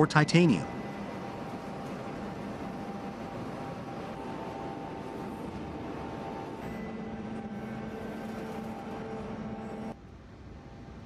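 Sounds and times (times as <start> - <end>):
industrial machinery droning hum: 0.0 - 11.0.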